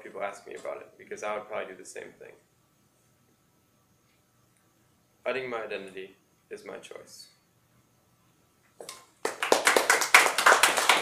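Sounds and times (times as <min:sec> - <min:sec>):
audience applauding: 0:09.2 - 0:11.0.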